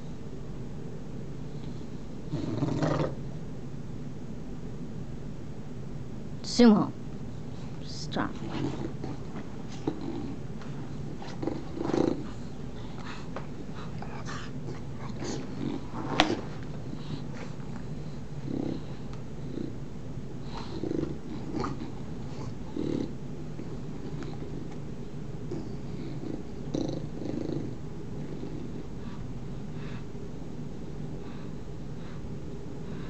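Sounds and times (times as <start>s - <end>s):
dogs growling: 2.2s - 3.3s, 8.3s - 29.2s
dog grunts: 2.3s - 3.3s, 8.3s - 24.8s, 25.4s - 29.0s.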